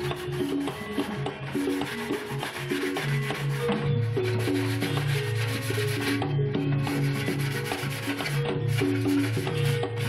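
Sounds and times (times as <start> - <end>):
sandpaper rubbing on plastic jug: 0.0 - 6.2, 6.9 - 10.0
background music with beat: 0.0 - 10.0.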